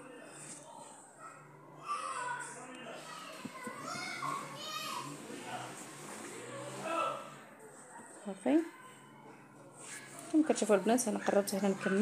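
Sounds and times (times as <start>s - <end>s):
children talking and playing: 0.0s - 12.0s.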